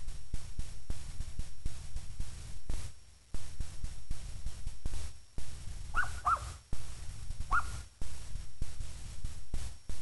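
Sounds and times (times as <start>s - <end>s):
short high animal calls: 6.0s - 6.6s, 7.5s - 7.9s.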